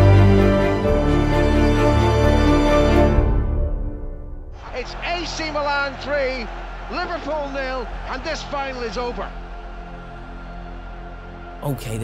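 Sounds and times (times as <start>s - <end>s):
person talking: 11.6s - 12.0s.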